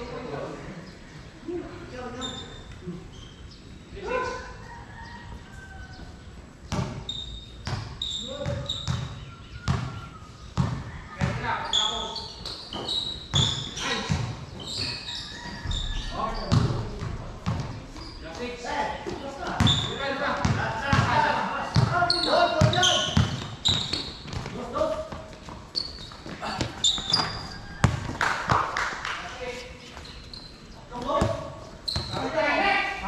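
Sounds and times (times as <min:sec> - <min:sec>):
sneakers squeaking: 0:01.8 - 0:28.7, 0:29.4 - 0:33.0
basketball bouncing on court: 0:06.7 - 0:11.4, 0:12.4 - 0:18.3, 0:19.0 - 0:28.6, 0:31.1 - 0:32.3.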